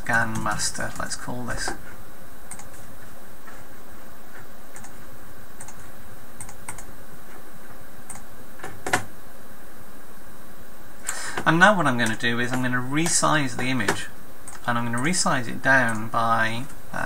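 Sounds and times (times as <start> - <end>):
steady hiss: 0.0 - 17.0
computer mouse and keyboard clicks: 2.5 - 2.8, 5.6 - 5.8.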